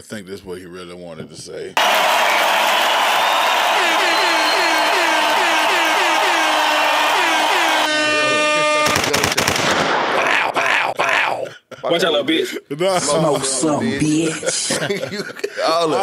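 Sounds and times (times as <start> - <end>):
sharp cracks: 8.8 - 10.5.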